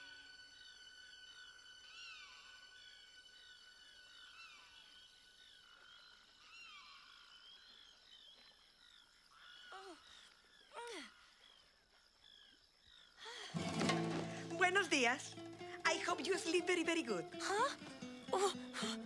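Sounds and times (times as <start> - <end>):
frogs chirping: 0.0 - 19.0.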